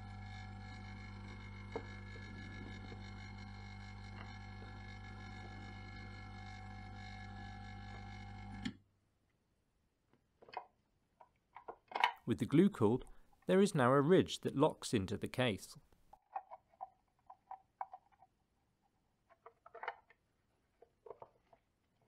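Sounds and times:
hot air rework station humming: 0:00.0 - 0:08.7.

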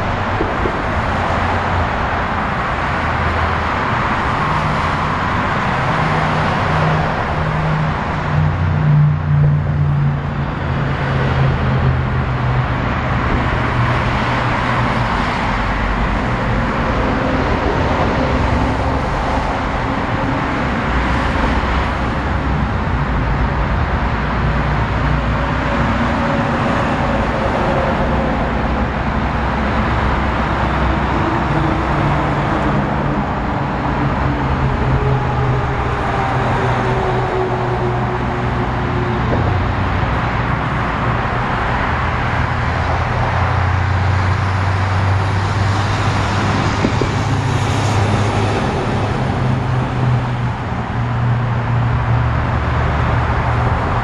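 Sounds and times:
cars and trucks passing: 0:00.0 - 0:54.0
heavy truck engines droning: 0:00.0 - 0:54.0.

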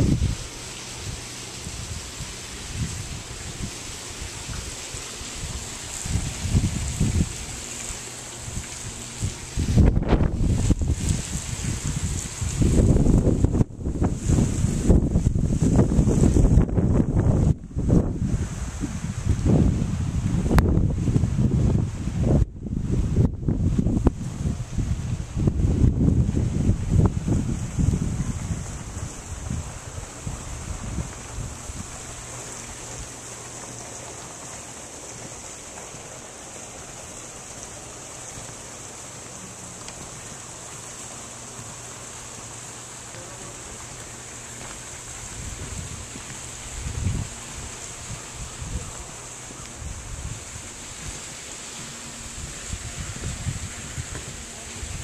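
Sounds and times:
wind buffeting microphone: 0:00.0 - 0:07.7, 0:08.4 - 0:33.2, 0:44.3 - 0:55.0.

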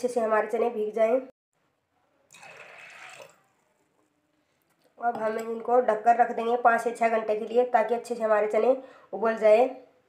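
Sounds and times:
water pouring into pot: 0:02.3 - 0:03.7.

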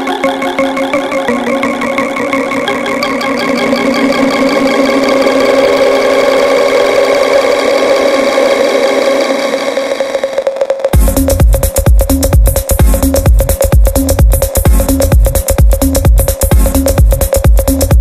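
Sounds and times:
sustained synth tones: 0:00.0 - 0:10.6
fast stuttering pulse: 0:00.0 - 0:15.2.

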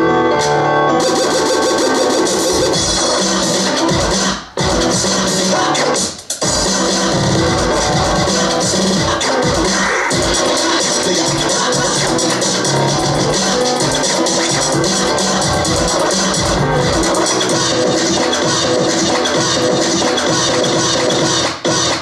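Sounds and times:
loud dance music: 0:00.0 - 0:22.0.

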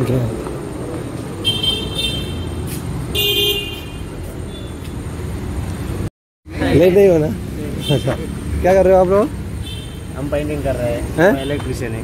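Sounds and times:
traffic rumble: 0:00.0 - 0:12.0
vehicle horns honking: 0:01.4 - 0:04.9, 0:07.8 - 0:08.3, 0:09.6 - 0:10.2.

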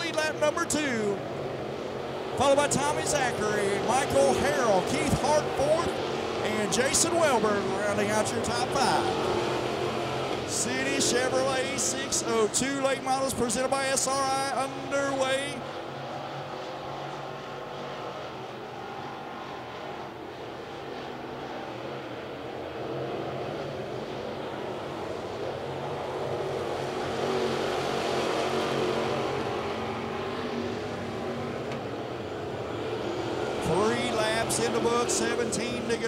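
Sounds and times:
race car engines droning: 0:00.0 - 0:36.0.

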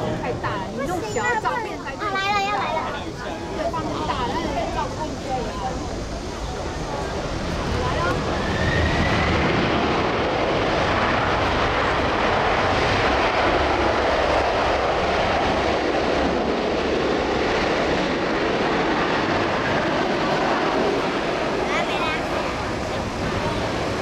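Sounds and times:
jet engines rushing: 0:00.0 - 0:24.0.

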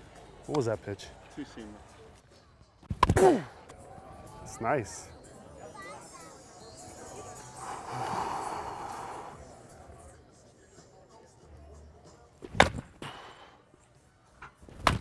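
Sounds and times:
wooden bat cracking ball: 0:02.9 - 0:03.3, 0:12.4 - 0:12.9, 0:14.7 - 0:15.0.

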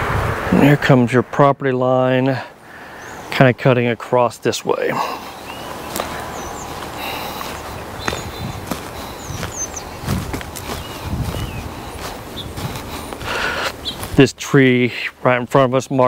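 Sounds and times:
birds chirping: 0:01.7 - 0:16.0
footsteps crunching on mulch: 0:04.8 - 0:15.6.

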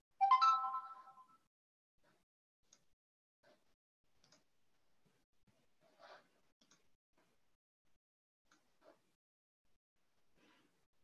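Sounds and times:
electronic notification chime: 0:00.2 - 0:01.1.

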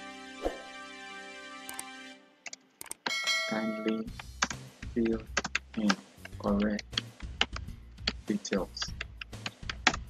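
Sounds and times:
typing on computer keyboard: 0:02.5 - 0:03.1, 0:03.9 - 0:08.2, 0:08.8 - 0:10.0.

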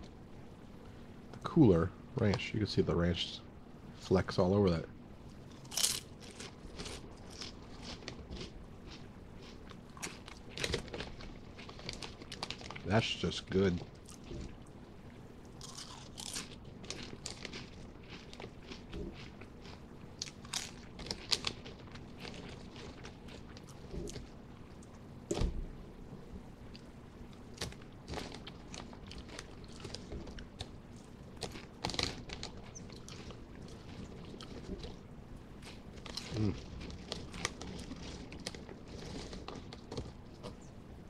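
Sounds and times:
person chewing potato chips: 0:05.5 - 0:14.7, 0:15.4 - 0:25.0, 0:26.7 - 0:40.7.

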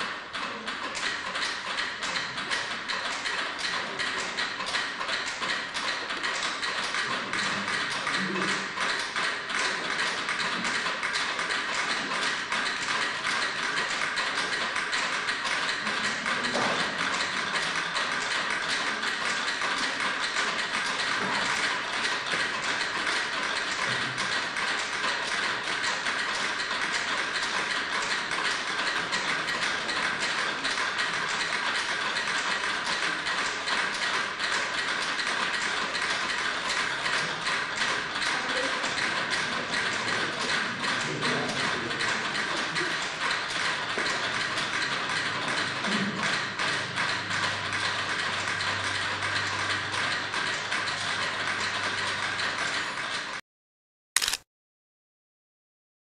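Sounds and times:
rapid mechanical clicking: 0:00.0 - 0:53.4, 0:54.2 - 0:54.4.

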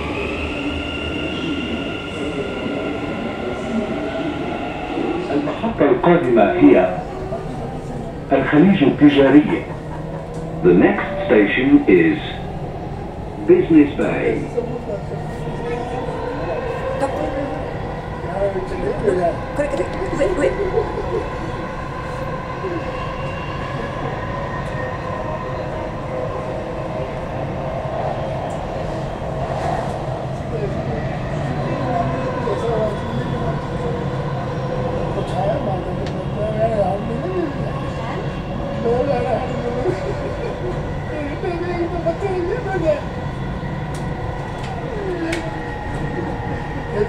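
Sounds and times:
train rumble: 0:00.0 - 0:47.0.

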